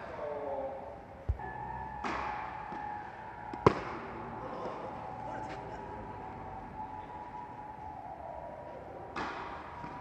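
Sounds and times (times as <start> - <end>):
racket hitting tennis ball: 2.0 - 2.8.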